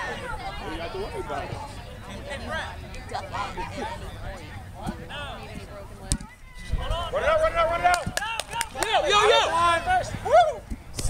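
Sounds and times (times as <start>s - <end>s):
players calling out: 0.0s - 10.7s.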